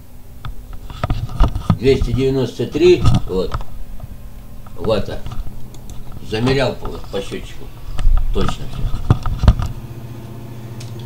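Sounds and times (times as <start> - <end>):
generator humming: 0.0 - 11.0.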